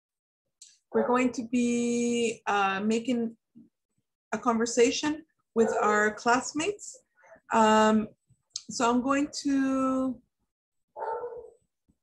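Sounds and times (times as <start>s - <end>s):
dog barking: 5.6s - 5.9s, 11.0s - 11.6s.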